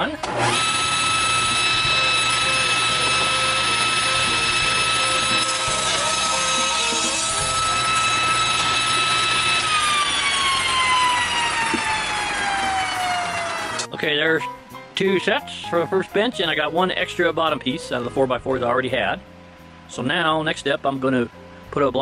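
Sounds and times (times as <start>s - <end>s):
table saw whine: 0.0s - 14.0s
saw blade spinning down: 0.2s - 13.9s.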